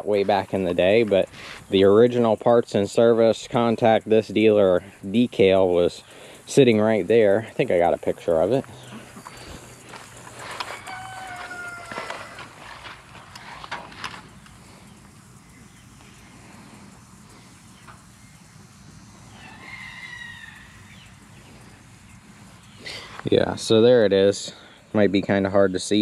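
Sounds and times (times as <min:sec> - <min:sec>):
distant farm animal calling: 0:08.8 - 0:12.8, 0:14.3 - 0:23.2.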